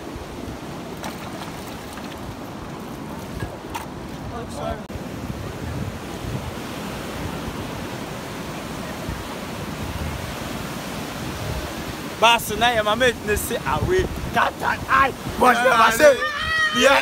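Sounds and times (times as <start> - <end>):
ocean surf breaking: 0.0 - 17.0
wind buffeting microphone: 0.0 - 17.0
person's voice: 12.2 - 17.0.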